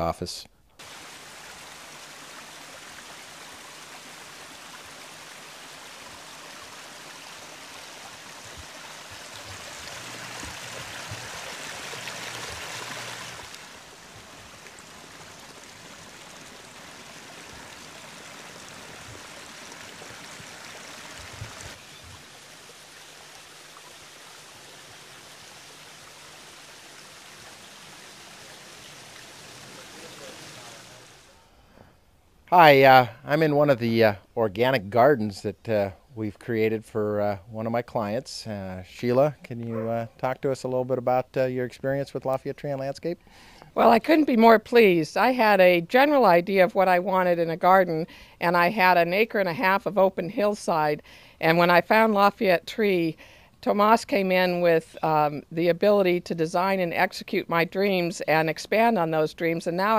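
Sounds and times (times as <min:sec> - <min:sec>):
water rushing over waterfall: 0:00.8 - 0:31.3.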